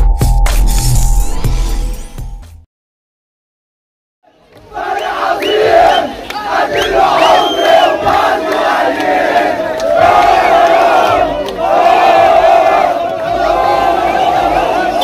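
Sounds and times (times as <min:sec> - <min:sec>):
crowd chanting and shouting: 0:04.3 - 0:15.0.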